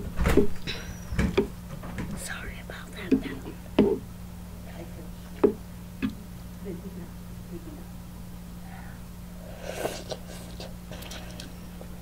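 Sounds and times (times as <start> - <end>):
breathy hissing sound: 8.6 - 10.6.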